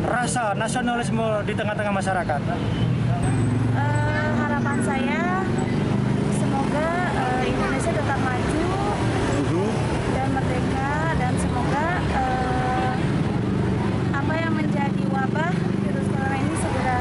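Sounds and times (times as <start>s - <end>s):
road traffic noise: 0.0s - 17.0s.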